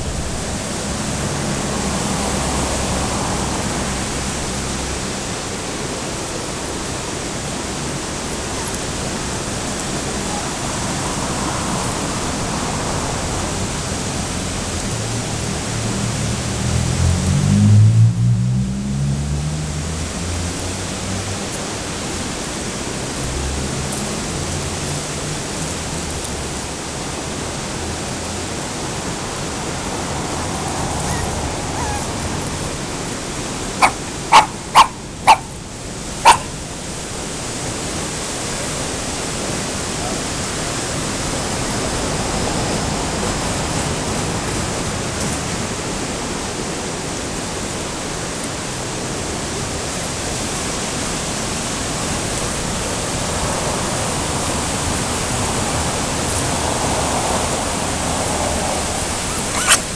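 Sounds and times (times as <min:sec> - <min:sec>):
river weir rushing: 0:00.0 - 0:59.9
dog barking: 0:31.1 - 0:32.1, 0:33.8 - 0:35.6, 0:36.2 - 0:36.6, 0:59.3 - 0:59.9.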